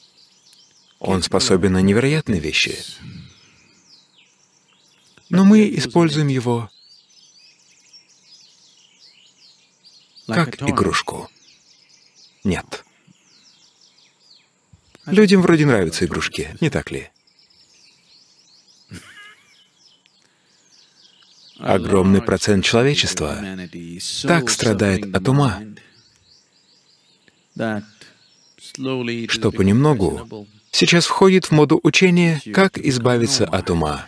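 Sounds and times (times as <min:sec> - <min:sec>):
faint bird chirps: 0:00.0 - 0:34.0
low steady hiss: 0:00.0 - 0:34.0
person speaking: 0:01.0 - 0:03.3, 0:10.3 - 0:11.3, 0:21.6 - 0:25.9, 0:27.6 - 0:34.0.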